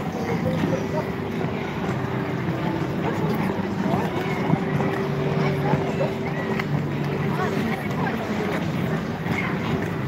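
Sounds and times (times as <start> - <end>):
skaters' voices: 0.0 - 10.0.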